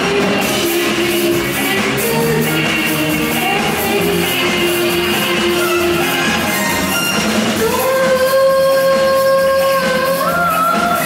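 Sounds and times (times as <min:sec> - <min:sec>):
backing music: 0:00.0 - 0:11.0
woman singing: 0:00.0 - 0:11.0.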